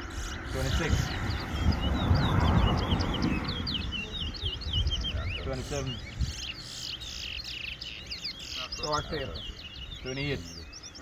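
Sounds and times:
finch twittering song: 0:00.0 - 0:11.0.

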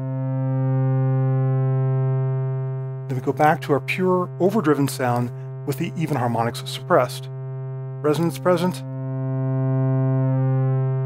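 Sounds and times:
sustained low synthesizer note: 0:00.0 - 0:11.0.

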